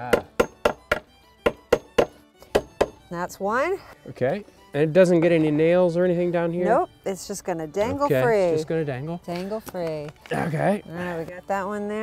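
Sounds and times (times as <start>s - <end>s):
hammer tapping nail into wood: 0.1s - 3.0s.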